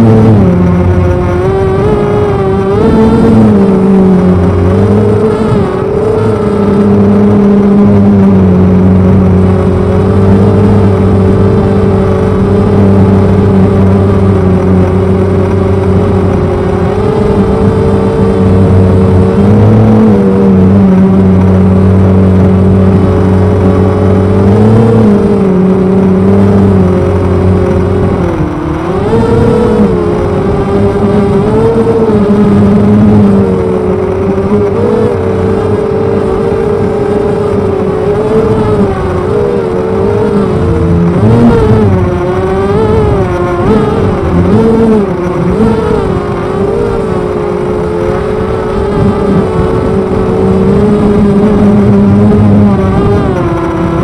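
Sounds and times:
drone motors whining: 0:00.0 - 0:54.0.

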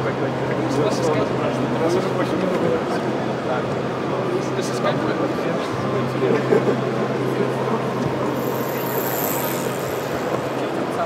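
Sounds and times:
indoor hall hubbub: 0:00.0 - 0:11.0
distant voices: 0:07.6 - 0:11.0.

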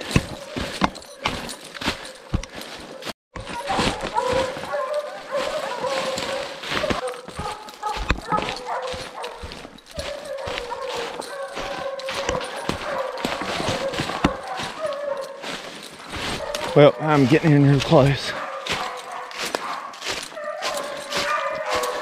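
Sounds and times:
footsteps crunching: 0:00.0 - 0:22.0
hounds baying: 0:00.0 - 0:22.0.

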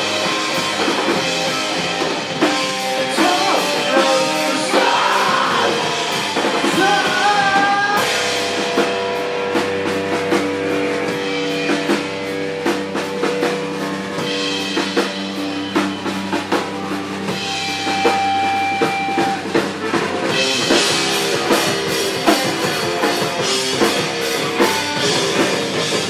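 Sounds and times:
drum kit: 0:00.0 - 0:26.0
electric guitars: 0:00.0 - 0:26.0
person singing: 0:02.9 - 0:08.2.

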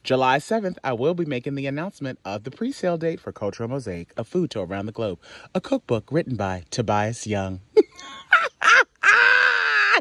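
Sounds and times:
man screaming excitedly: 0:08.3 - 0:10.0
man yelping: 0:08.6 - 0:10.0.

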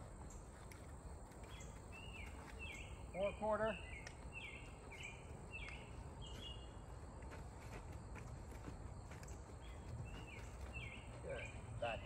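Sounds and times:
hoof steps on dirt: 0:00.0 - 0:03.2, 0:04.0 - 0:11.7.

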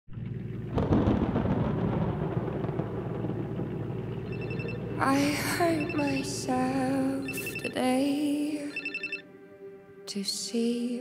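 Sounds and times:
rain falling: 0:00.1 - 0:08.1
thunder rumbling: 0:00.1 - 0:08.1.

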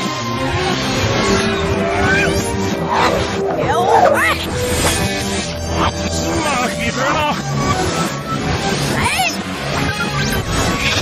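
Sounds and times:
cartoon soundtrack music: 0:00.0 - 0:11.0
whooshing sound effects: 0:01.3 - 0:05.4.

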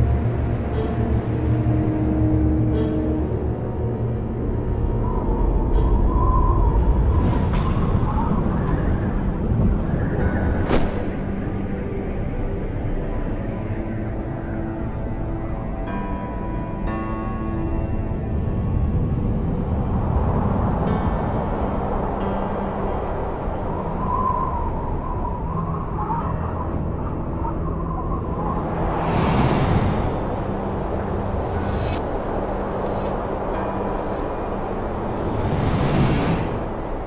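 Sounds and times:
eerie suspense music: 0:00.0 - 0:37.0
wind gusts: 0:00.0 - 0:37.0.

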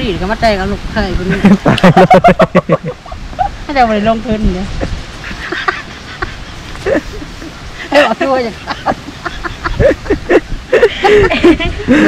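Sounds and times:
women laughing: 0:01.2 - 0:03.7, 0:04.6 - 0:12.0.

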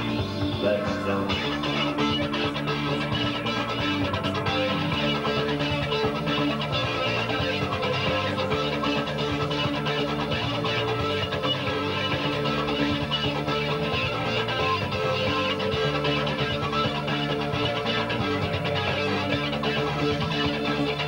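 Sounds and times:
band backing track: 0:00.0 - 0:21.0
electric guitar picking: 0:00.0 - 0:21.0.

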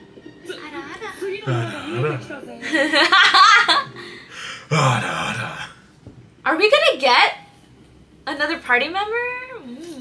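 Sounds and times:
woman laughing: 0:01.5 - 0:03.9
character speaking: 0:04.7 - 0:05.8.

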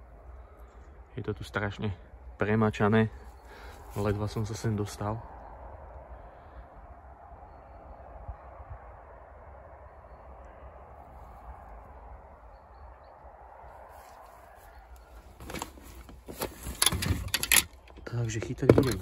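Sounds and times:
car engine and tyre noise: 0:02.1 - 0:19.0
gear knocking and clattering: 0:15.4 - 0:19.0.

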